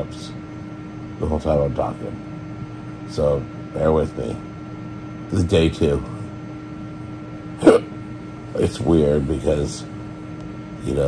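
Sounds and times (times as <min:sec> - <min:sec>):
faint hum: 0:00.0 - 0:11.0
man hiccuping: 0:07.6 - 0:08.0.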